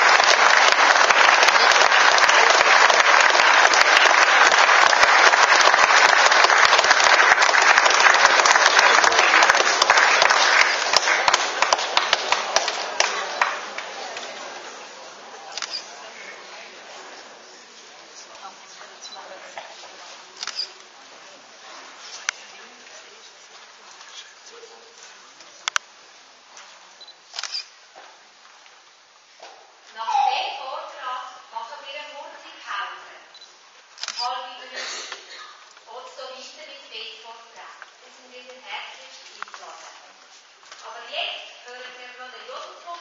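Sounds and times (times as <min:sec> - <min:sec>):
audience murmur: 0:00.0 - 0:25.8.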